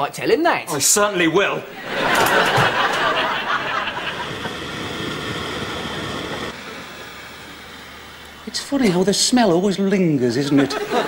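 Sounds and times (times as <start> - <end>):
small fire crackling: 1.8 - 10.1.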